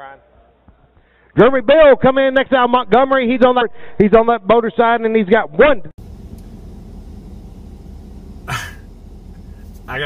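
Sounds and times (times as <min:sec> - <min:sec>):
vehicle engine rumble: 0:06.0 - 0:10.0.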